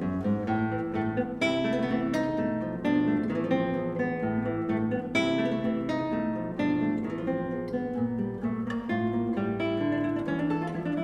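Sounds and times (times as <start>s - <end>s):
classical guitar playing: 0.0s - 11.0s.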